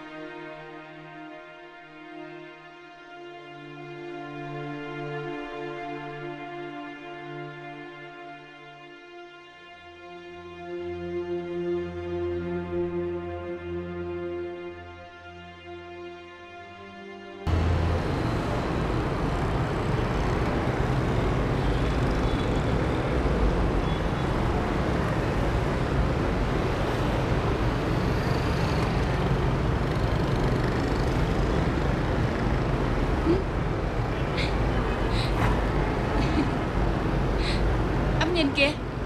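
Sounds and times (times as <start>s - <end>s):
motorbikes and cars passing: 17.5s - 39.0s.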